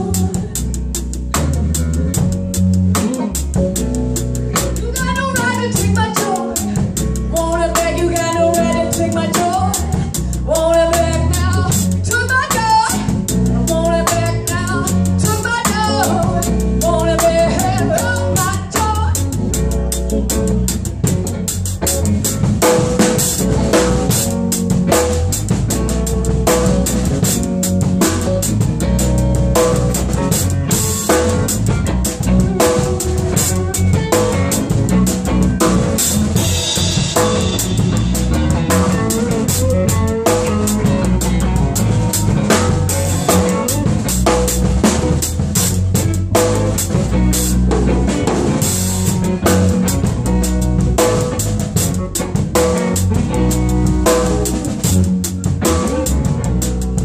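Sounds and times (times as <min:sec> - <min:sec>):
band jamming live: 0:00.0 - 0:57.0
drum kit groove with cymbals: 0:00.0 - 0:57.0.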